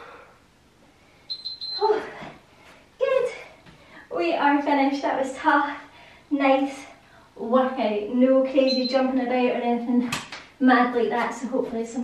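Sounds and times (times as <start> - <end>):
short electronic beep: 1.3 - 1.9, 8.7 - 9.0.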